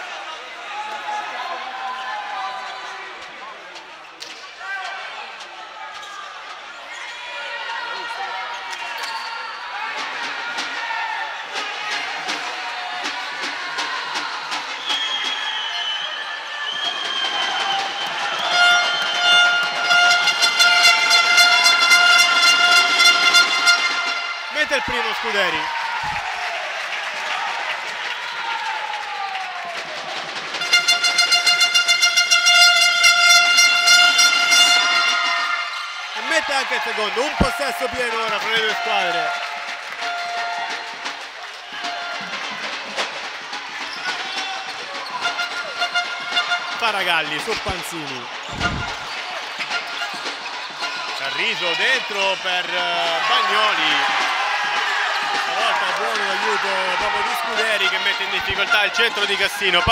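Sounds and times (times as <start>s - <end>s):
crowd voices talking and calling: 0.0s - 59.9s
loud horn blasts: 18.1s - 24.6s, 30.6s - 36.0s, 37.2s - 42.4s, 45.2s - 47.8s, 48.5s - 49.1s.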